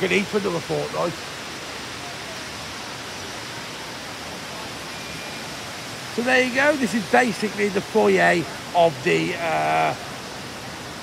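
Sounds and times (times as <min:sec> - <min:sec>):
even hiss: 0:02.6 - 0:10.6.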